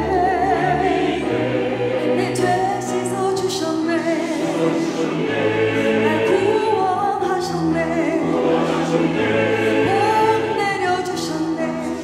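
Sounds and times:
church choir singing: 0.0s - 12.0s
piano accompaniment: 0.0s - 12.0s.

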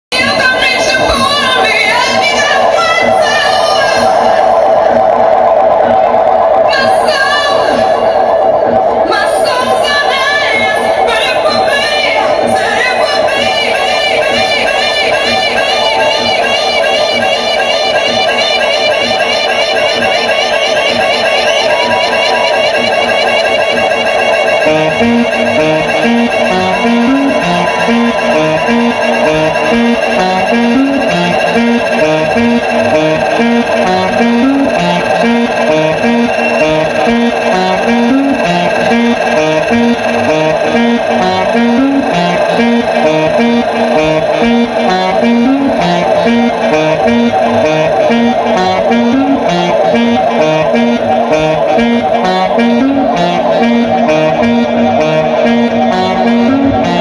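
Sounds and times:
electronic dance music: 0.0s - 57.0s.

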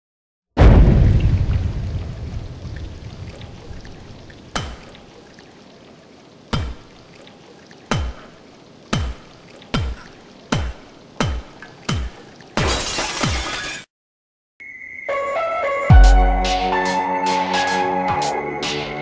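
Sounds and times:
crashing shattering burst: 12.6s - 13.8s.

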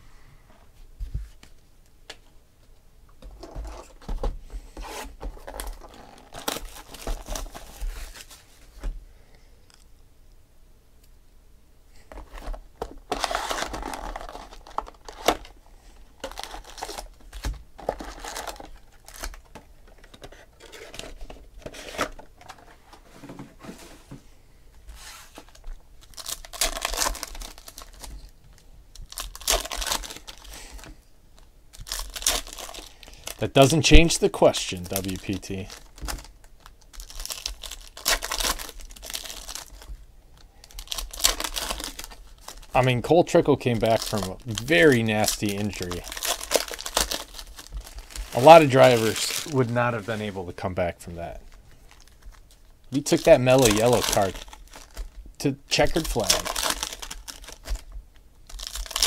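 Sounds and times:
packaging tearing and crinkling: 5.4s - 8.4s, 12.3s - 15.6s, 16.2s - 22.2s, 25.4s - 30.9s, 31.7s - 50.3s, 51.5s - 59.0s.

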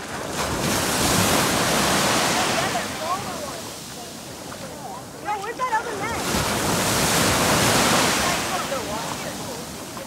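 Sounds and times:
wave breaking in shallow surf: 0.0s - 10.0s
voices calling out: 2.0s - 10.0s.

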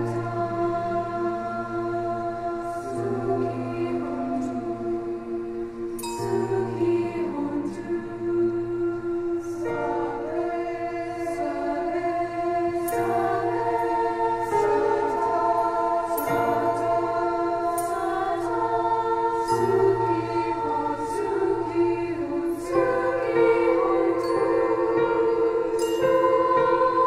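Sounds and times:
choir singing sustained chords: 0.0s - 27.0s.

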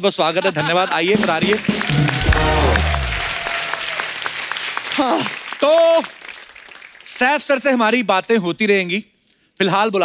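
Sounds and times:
studio audience applauding: 0.7s - 7.5s
short music sting: 1.2s - 3.5s
deep bass hit: 1.2s - 3.7s.

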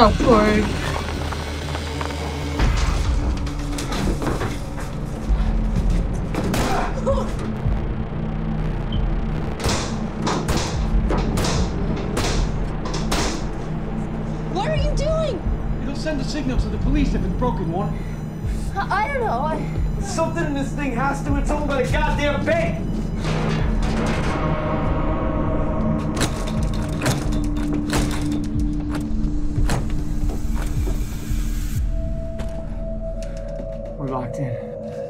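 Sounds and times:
low music drone: 0.0s - 35.0s.

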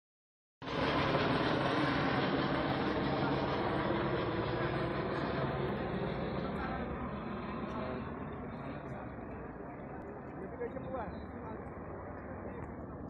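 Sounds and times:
helicopter flying low overhead: 0.6s - 13.0s.

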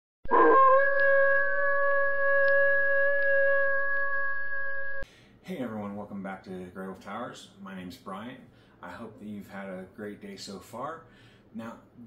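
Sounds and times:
long held tone: 0.3s - 5.0s.

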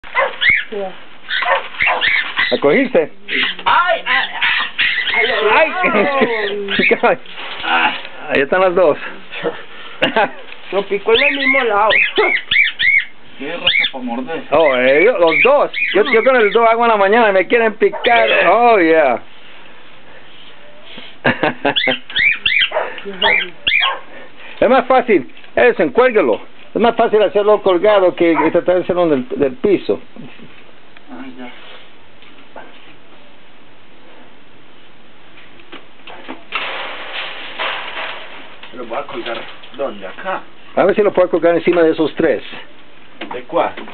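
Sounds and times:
birds giving harsh calls: 0.0s - 8.6s, 9.2s - 18.8s, 20.1s - 29.0s.

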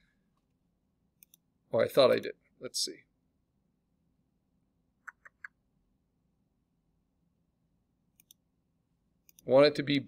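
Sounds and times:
computer mouse clicks: 1.2s - 1.5s, 5.0s - 5.6s, 8.1s - 8.4s, 9.2s - 9.5s.

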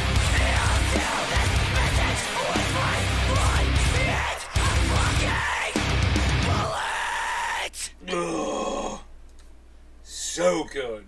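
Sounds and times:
man groaning: 0.2s - 9.1s.

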